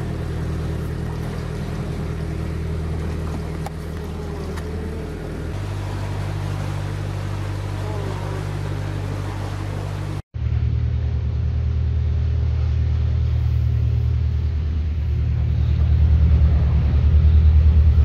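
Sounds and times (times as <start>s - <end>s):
diesel engine running: 0.0s - 18.0s.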